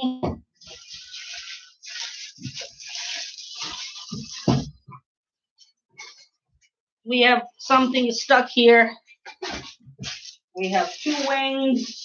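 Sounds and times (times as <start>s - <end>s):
plastic and cardboard rustling: 0.7s - 4.8s, 9.3s - 12.0s.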